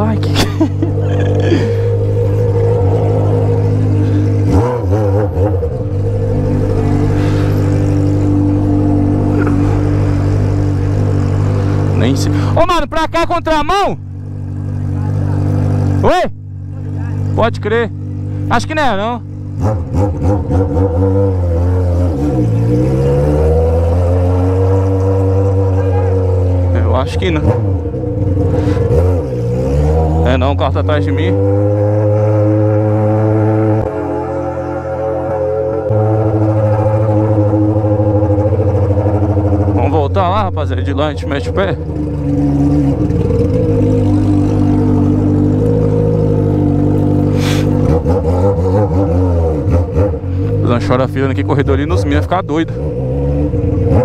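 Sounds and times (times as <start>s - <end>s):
motorcycle engine at low revs: 0.0s - 12.6s, 14.0s - 54.0s.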